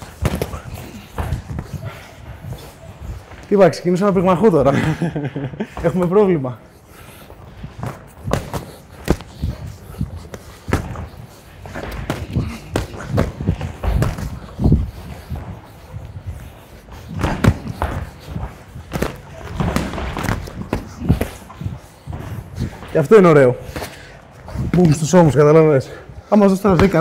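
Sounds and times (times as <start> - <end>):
boxing gloves thudding: 0.0 - 2.8, 7.6 - 23.0, 26.6 - 27.0.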